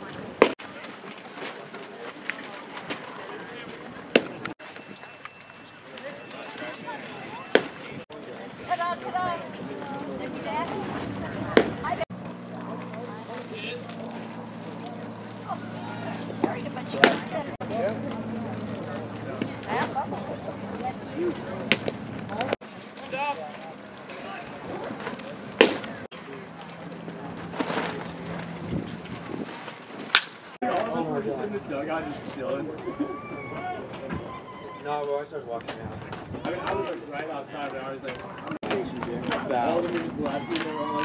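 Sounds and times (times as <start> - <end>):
background voices and chatter: 0.0 - 41.0
sharp crack: 25.6 - 26.1, 30.0 - 30.6.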